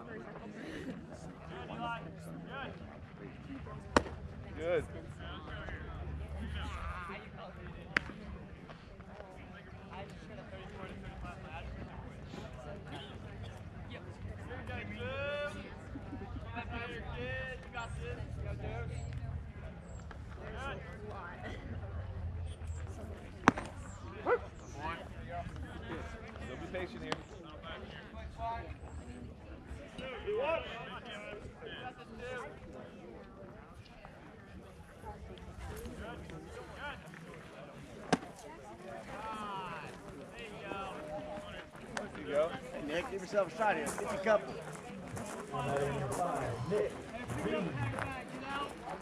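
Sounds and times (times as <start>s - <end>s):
voices: 0.0s - 49.0s
baseball bat crack: 3.9s - 4.2s, 7.9s - 8.2s, 23.4s - 24.0s, 38.0s - 38.4s.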